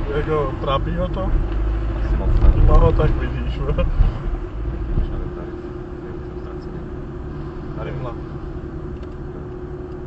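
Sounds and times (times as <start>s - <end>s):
car engine and tyre noise: 0.0s - 10.0s
constant low hum: 0.0s - 10.0s.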